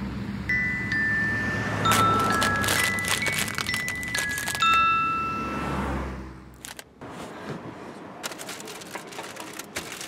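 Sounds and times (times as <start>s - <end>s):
foil snack bag crinkling: 1.9s - 4.8s, 8.2s - 10.0s.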